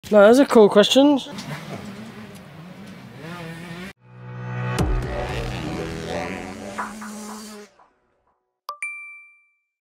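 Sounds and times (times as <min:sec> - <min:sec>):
outro music: 0:04.0 - 0:08.3
ding with quick clicks: 0:08.7 - 0:09.6.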